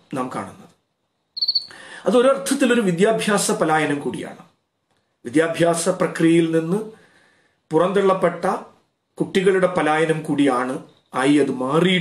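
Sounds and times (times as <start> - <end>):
high pulsed chirp: 1.4 - 1.8
man speaking: 7.7 - 12.0.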